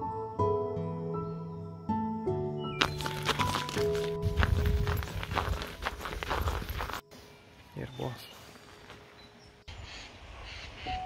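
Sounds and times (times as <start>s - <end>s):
background music with sustained notes: 0.0s - 9.8s
footsteps crunching on snow: 2.8s - 9.3s.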